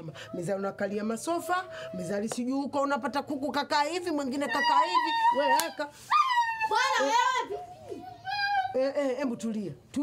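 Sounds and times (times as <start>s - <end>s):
young child whining cry: 4.5s - 8.8s.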